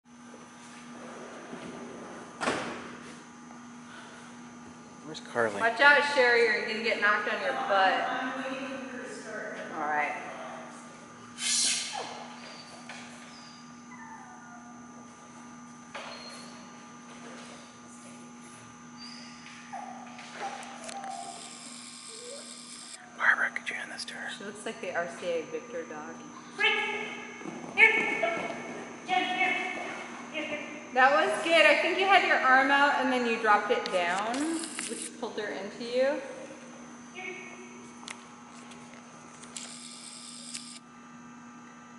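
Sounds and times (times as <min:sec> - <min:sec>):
steady low hum: 0:00.1 - 0:41.9.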